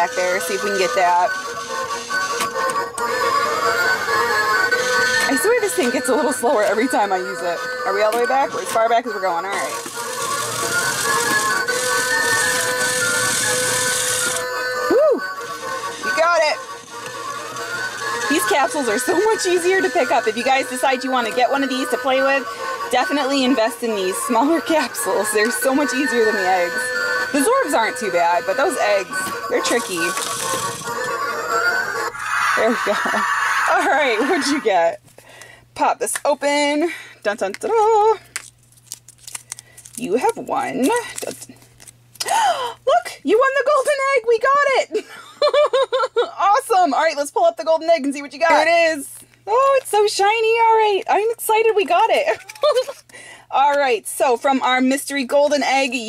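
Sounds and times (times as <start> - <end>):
electronic tune: 0.0 - 34.5
small motor whirring: 0.0 - 34.7.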